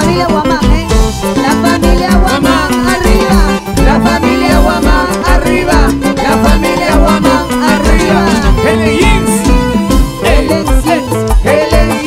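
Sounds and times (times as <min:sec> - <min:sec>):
live latin dance band: 0:00.0 - 0:12.0.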